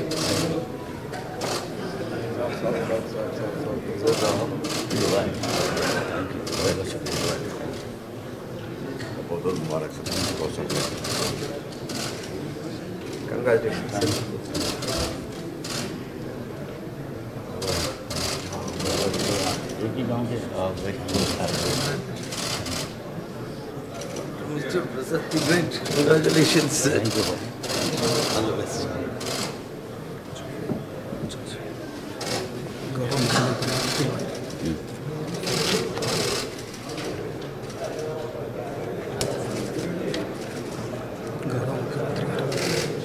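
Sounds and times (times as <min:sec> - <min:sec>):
murmur of voices: 0:00.0 - 0:43.0.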